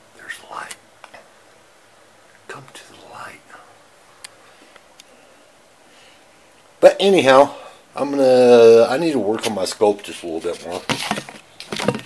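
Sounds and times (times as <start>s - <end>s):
man whispering: 0.1s - 0.8s, 2.4s - 3.8s.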